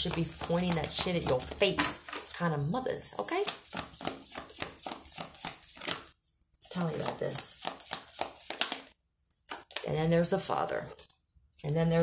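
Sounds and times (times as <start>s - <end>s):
cards being shuffled: 0.0s - 2.5s, 3.2s - 10.1s.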